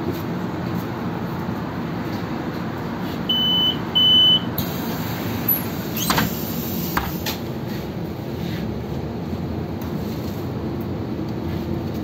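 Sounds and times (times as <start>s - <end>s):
bus engine idling: 2.8s - 7.2s
bus doors closing: 3.0s - 7.5s
bus door warning beeps: 3.3s - 4.8s.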